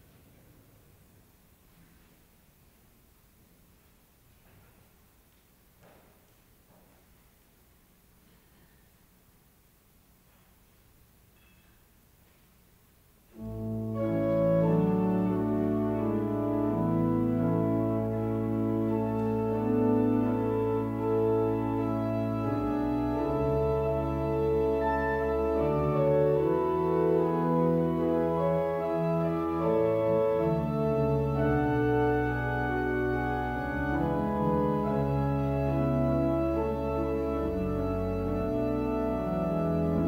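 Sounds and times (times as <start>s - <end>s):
church organ chords: 13.3s - 40.0s.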